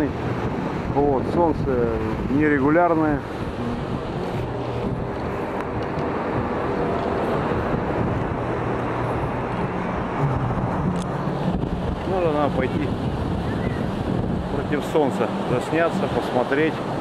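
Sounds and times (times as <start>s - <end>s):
surf breaking on shore: 0.0s - 17.0s
wind buffeting microphone: 0.0s - 17.0s.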